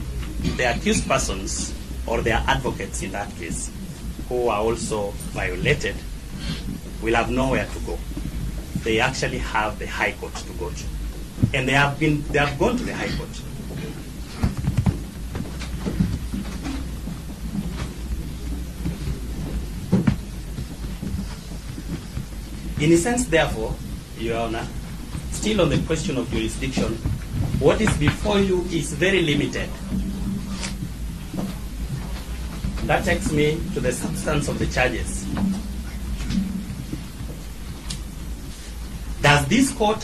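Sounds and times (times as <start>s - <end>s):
faint murmuring: 0.0s - 31.0s
low rumbling room noise: 0.0s - 40.0s.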